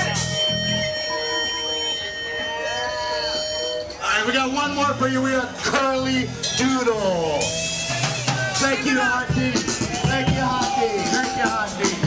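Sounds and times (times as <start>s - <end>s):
band instruments ringing out: 0.0s - 12.0s.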